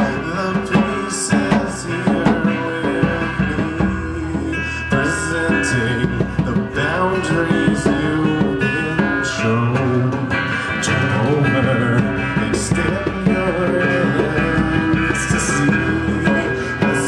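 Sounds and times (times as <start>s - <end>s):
acoustic guitar strumming: 0.0s - 17.0s
man singing: 0.0s - 17.0s.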